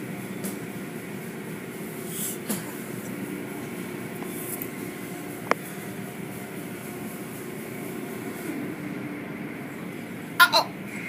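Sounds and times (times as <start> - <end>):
car wash machinery: 0.0 - 11.0.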